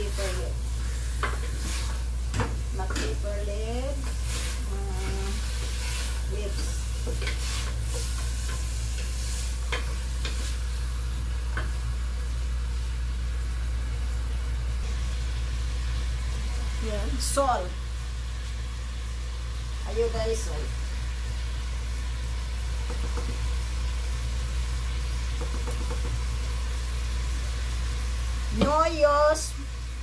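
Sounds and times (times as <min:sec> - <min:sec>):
food sizzling: 0:00.0 - 0:30.0
wooden spoon scraping a pot: 0:00.9 - 0:02.1, 0:03.9 - 0:10.7.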